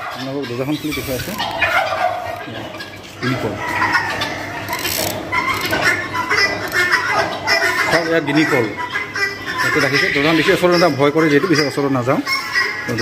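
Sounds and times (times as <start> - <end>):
guineafowl calling: 0.0 - 13.0.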